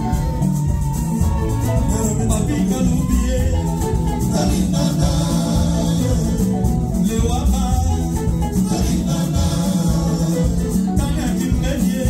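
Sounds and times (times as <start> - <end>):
drums driving beat: 0.0 - 12.0
electric guitar: 0.0 - 12.0
singers chanting into microphones: 1.7 - 12.0.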